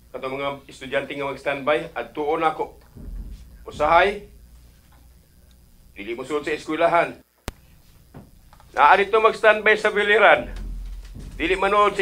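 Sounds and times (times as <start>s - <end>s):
faint low hum: 0.0s - 12.0s
person speaking: 1.9s - 4.4s.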